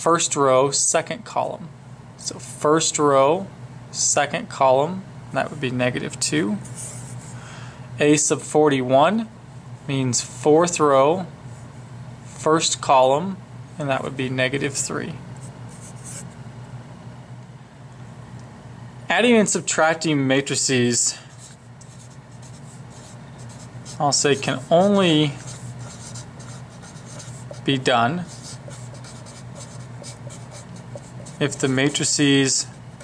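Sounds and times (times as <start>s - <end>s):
faint low hum: 0.0s - 33.0s
marker writing on paper: 15.4s - 16.3s, 21.3s - 33.0s.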